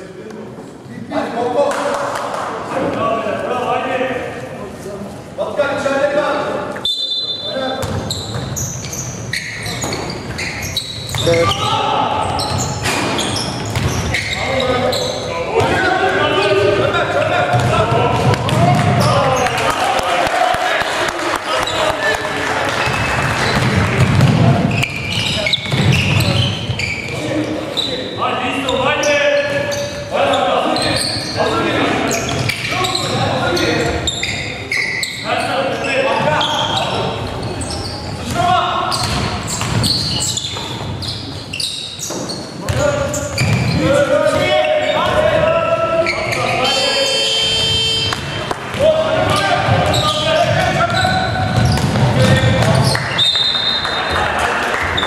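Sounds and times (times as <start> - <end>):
voices of players and spectators: 0.0 - 55.0
ball bouncing on wooden court: 7.8 - 9.0, 12.2 - 14.3, 17.5 - 19.5, 22.8 - 27.2, 38.2 - 41.0, 42.0 - 44.4, 47.8 - 53.0.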